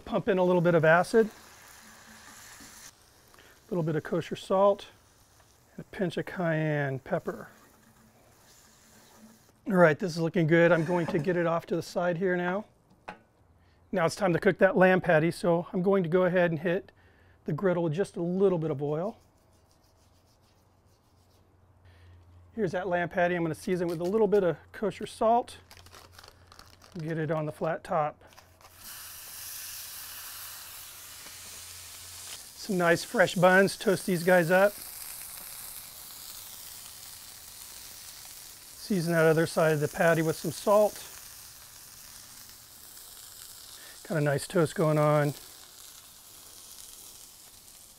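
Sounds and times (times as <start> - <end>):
meat patty sizzling on griddle: 0.0 - 11.4, 28.4 - 47.9
brush rubbing through oil: 10.6 - 11.4, 18.7 - 21.5, 31.5 - 34.8.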